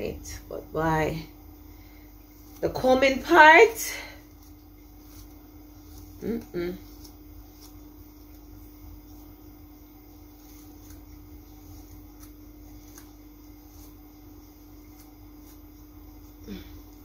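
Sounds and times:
steady low hum: 0.0 - 17.0
comb scratching through hair: 2.3 - 16.4.

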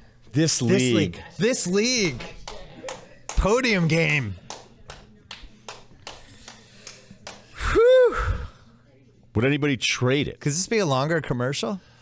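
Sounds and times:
high voiced ooh: 7.6 - 8.5.

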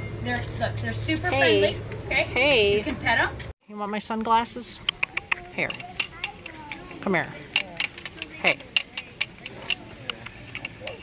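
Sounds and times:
sunglasses clicking and tapping: 4.8 - 11.0.

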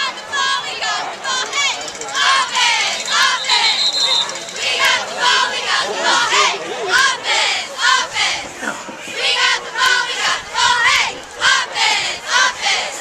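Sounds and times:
crowd and players yelling: 0.0 - 13.0
high whistle blast: 3.0 - 4.4.

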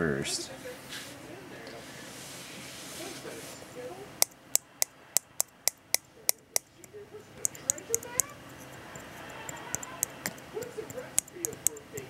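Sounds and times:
faint handling rustle: 0.6 - 3.7
finger tapping plastic vial: 4.2 - 12.0.

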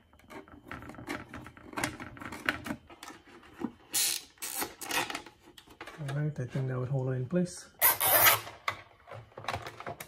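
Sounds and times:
zip tie ratcheting: 7.8 - 8.4.

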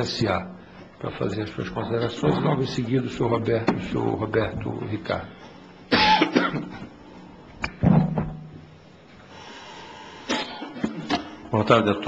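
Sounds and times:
person coughing: 5.9 - 6.8, 10.3 - 11.2.

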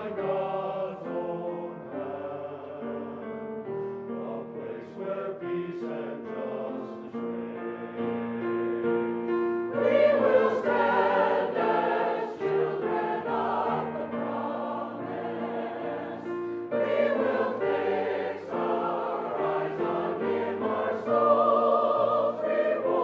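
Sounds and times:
mixed choir singing: 0.0 - 3.3, 4.2 - 23.0.

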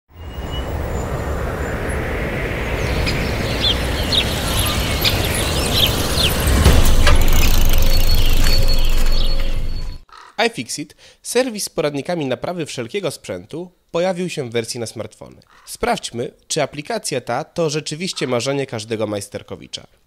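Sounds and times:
rumbling wash of noise: 0.1 - 9.0
bird-like chirps: 0.1 - 10.4.

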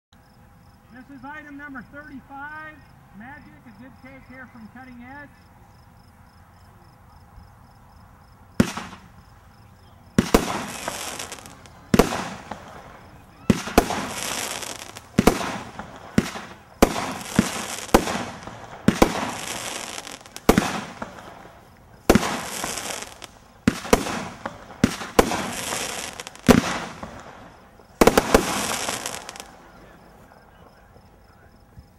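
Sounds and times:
firework hissing crackle: 8.5 - 30.2
firework launch shots: 8.6 - 9.4, 10.1 - 29.7.

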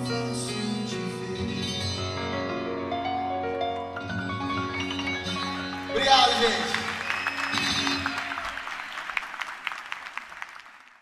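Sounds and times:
slow ballad on electronic keyboard: 0.0 - 5.7
audience cheering: 5.9 - 11.0.

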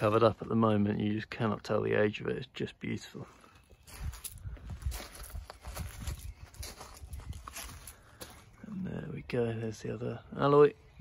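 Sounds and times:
footsteps crunching on gravel: 3.1 - 8.8.

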